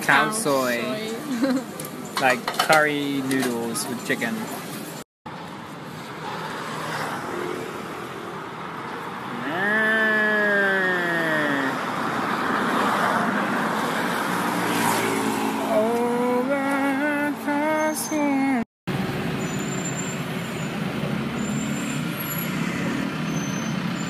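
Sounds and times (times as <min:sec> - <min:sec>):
road traffic: 0:00.0 - 0:24.0.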